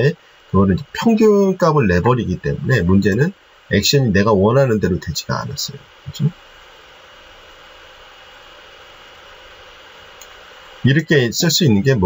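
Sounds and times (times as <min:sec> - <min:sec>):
faint high-pitched whine: 0:00.0 - 0:12.0
low background hiss: 0:00.0 - 0:12.0.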